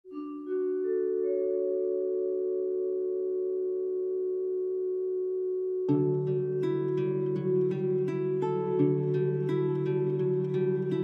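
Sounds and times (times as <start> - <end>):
plucked-string music: 0.1 - 3.1, 5.9 - 11.0
soft bell-like chord: 0.1 - 11.0.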